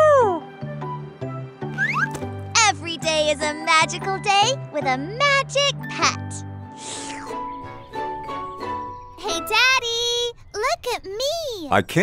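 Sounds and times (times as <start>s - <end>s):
cartoon background music: 0.0s - 12.0s
rising whistle sound effect: 1.8s - 2.1s.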